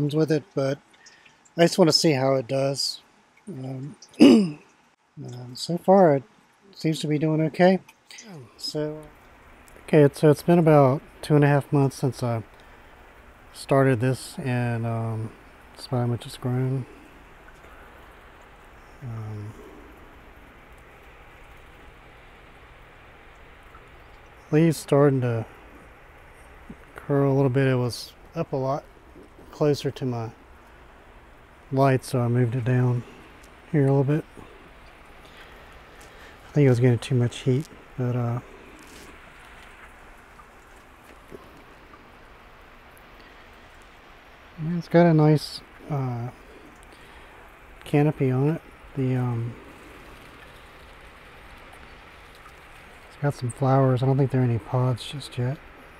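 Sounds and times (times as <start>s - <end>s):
small fan hissing: 0.0s - 55.9s.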